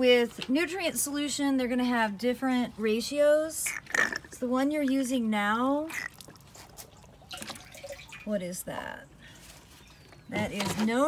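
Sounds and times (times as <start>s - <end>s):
liquid dripping and trickling: 5.9s - 8.4s.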